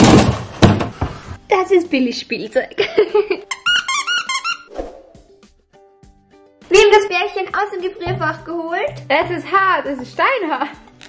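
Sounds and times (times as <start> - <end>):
soft background music: 1.2 - 11.0
squeaky toy squeaks: 3.5 - 4.7.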